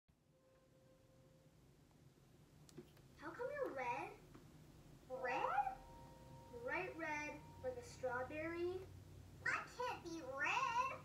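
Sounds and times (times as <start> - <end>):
cartoon child's voice rising syllable: 5.1 - 5.8.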